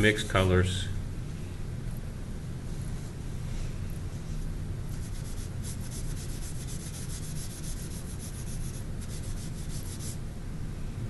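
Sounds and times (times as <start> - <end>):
chalk rubbing on paper: 4.9 - 10.2.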